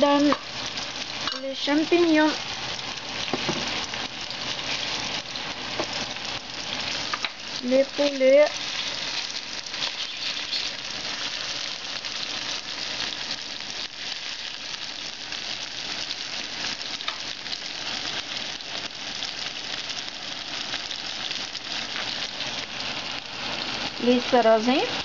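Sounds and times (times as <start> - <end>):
food sizzling in frying pan: 0.0 - 25.0.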